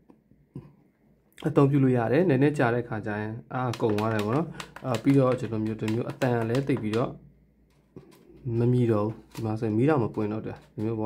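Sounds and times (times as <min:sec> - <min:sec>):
man talking: 0:01.4 - 0:07.2, 0:08.4 - 0:11.0.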